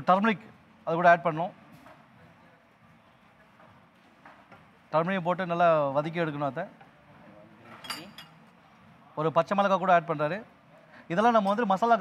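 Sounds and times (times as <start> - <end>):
faint clinks of utensils and dishes: 7.6 - 8.7.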